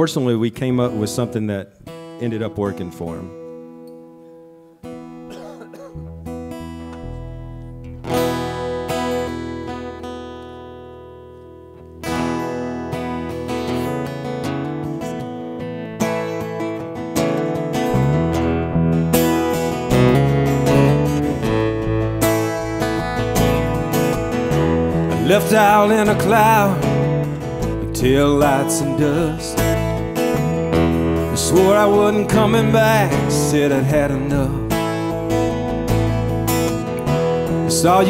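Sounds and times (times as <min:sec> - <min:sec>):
acoustic guitars strumming: 0:00.0 - 0:38.0.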